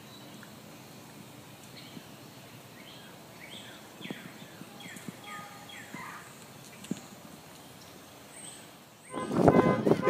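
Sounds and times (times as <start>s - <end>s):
faint outdoor background noise: 0.0s - 10.0s
voices: 3.1s - 7.4s.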